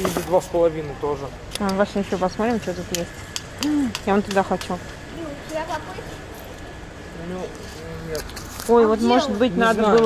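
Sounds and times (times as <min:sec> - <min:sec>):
shop floor background hum: 0:00.0 - 0:10.0.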